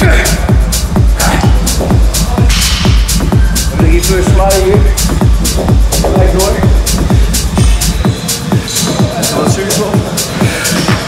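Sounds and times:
deep bass: 0:00.0 - 0:11.0
electronic dance music: 0:00.0 - 0:11.0.

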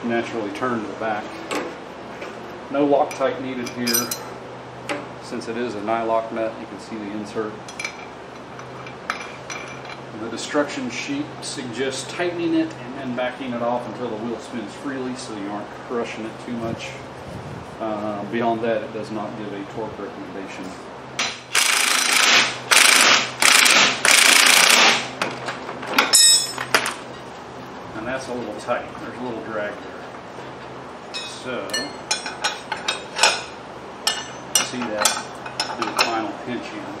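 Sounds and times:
light metallic clinks: 0:03.7 - 0:04.4
power driver tightening nut: 0:21.6 - 0:24.8.

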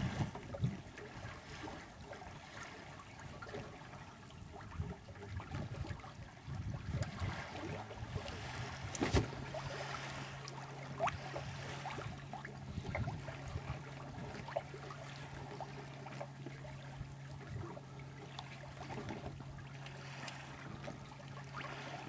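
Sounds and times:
small splashes: 0:00.0 - 0:22.0
steady low hum: 0:00.0 - 0:22.0
water lapping against boat hull: 0:00.0 - 0:22.0.

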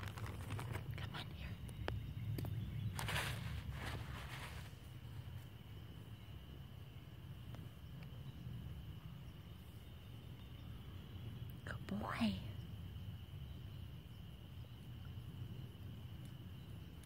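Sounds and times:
rustling hiss: 0:02.6 - 0:17.0.

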